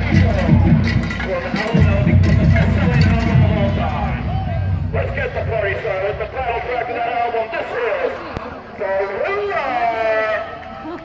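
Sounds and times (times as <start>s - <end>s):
music: 0.0s - 6.3s
heavy low rumble: 0.0s - 7.4s
several voices talking: 0.0s - 11.0s.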